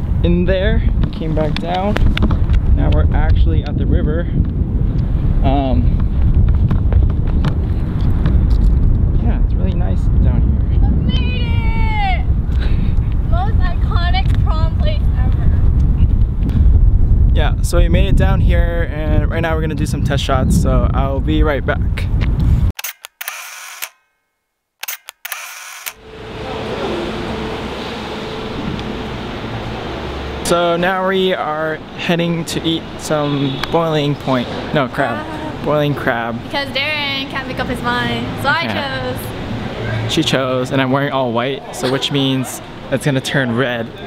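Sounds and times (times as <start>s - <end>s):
wind buffeting microphone: 0.0s - 22.8s
camera shutter clicks: 22.8s - 24.0s, 24.8s - 26.0s.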